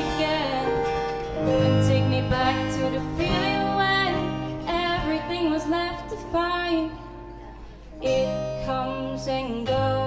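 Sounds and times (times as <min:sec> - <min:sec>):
acoustic guitar and piano ballad: 0:00.0 - 0:10.0.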